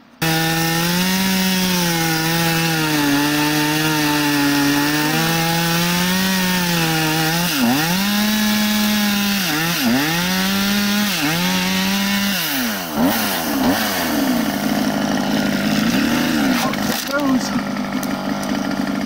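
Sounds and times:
chainsaw cutting log: 0:00.2 - 0:19.0.

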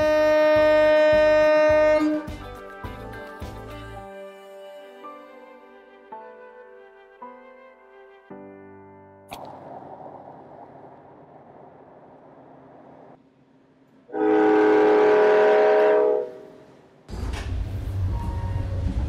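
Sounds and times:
diesel train horn: 0:00.0 - 0:02.4, 0:14.1 - 0:16.8
locomotive rumble: 0:17.0 - 0:19.0.

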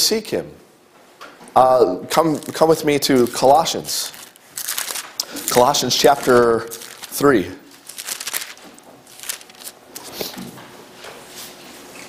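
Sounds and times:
book pages rustling: 0:02.2 - 0:10.4.

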